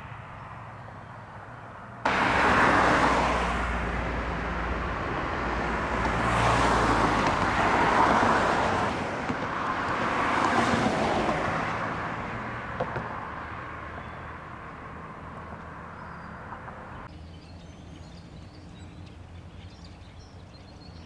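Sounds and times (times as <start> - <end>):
cars passing on highway: 0.0 - 21.0.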